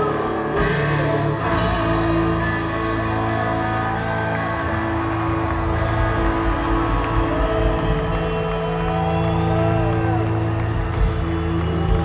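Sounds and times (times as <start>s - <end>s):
electric guitars bending notes: 0.0s - 12.0s
live rock band: 0.0s - 12.0s
steady bass: 0.0s - 12.0s.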